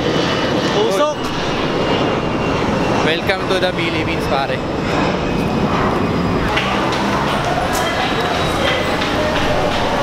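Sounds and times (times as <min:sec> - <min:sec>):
heavy road traffic roar: 0:00.0 - 0:10.0.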